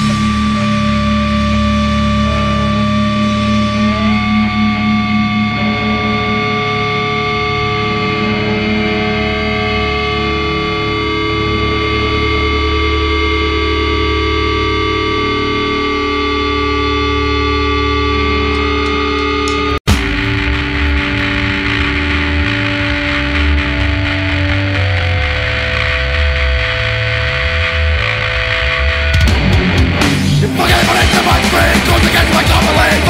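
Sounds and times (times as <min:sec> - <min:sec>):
distorted electric guitar notes: 0:00.0 - 0:33.0.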